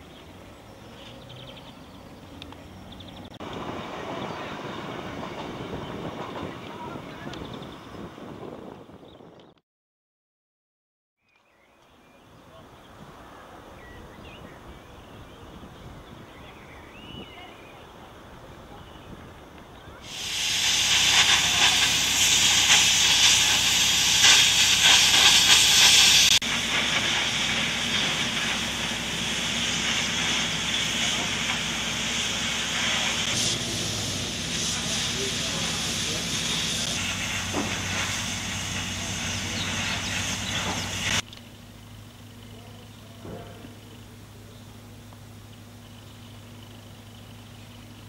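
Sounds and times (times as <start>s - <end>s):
loud steady hissing: 17.7s - 48.0s.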